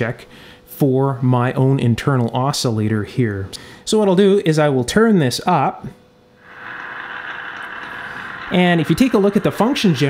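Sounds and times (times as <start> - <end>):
radio static hissing: 6.4 - 10.0.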